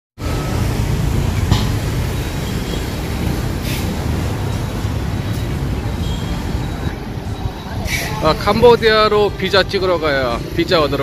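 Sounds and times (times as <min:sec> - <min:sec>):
vehicles passing on busy road: 0:00.2 - 0:11.0.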